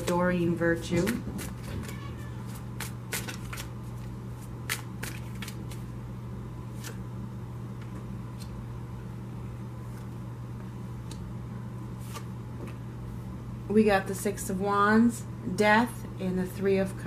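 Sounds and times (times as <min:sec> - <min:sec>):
steady low hum: 0:00.0 - 0:17.0
cards being shuffled: 0:01.0 - 0:05.9, 0:06.7 - 0:07.0, 0:12.0 - 0:12.8
cards tapped down: 0:01.1 - 0:03.7, 0:04.7 - 0:05.8.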